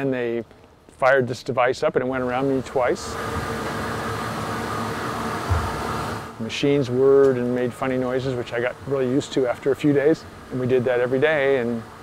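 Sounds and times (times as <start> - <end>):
linear accelerator whir and hum: 2.3 - 12.0
low thump: 5.5 - 5.8.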